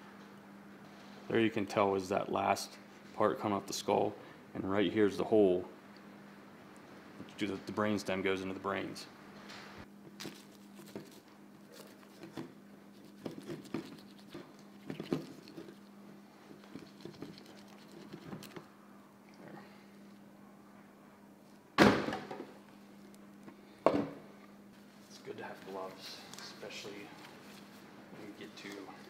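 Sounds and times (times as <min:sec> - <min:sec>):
knife cutting and scraping meat: 0:10.3 - 0:16.0, 0:16.6 - 0:18.6.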